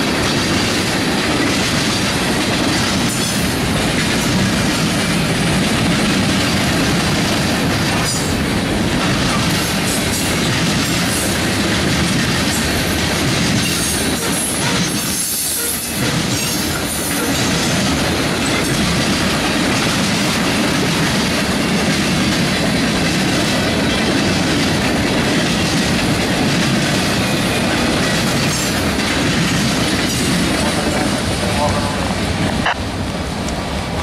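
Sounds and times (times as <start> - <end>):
freight cars clickety-clack on rails: 0.0 - 34.0.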